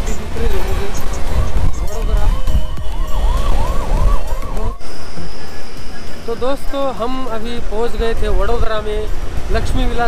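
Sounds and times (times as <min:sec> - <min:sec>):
motorcycle rumbling: 0:00.0 - 0:10.0
siren yelping: 0:01.3 - 0:06.9.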